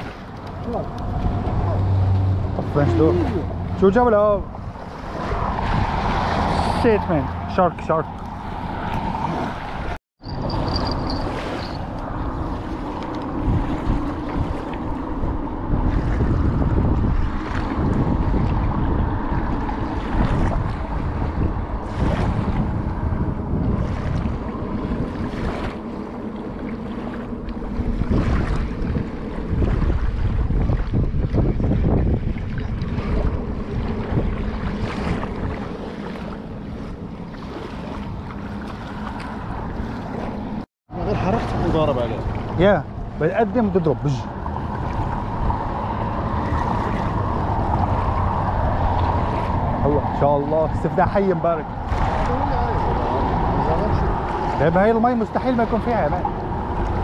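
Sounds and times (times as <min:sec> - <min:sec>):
small waves washing on sand: 0:00.0 - 0:57.0
wind buffeting microphone: 0:00.0 - 0:57.0.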